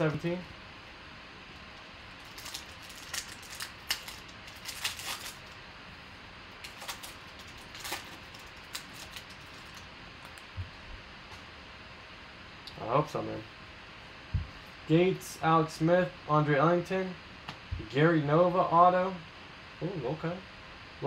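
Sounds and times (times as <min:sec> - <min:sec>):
foil wrapper crinkling and tearing: 0:02.1 - 0:05.6, 0:06.6 - 0:10.5.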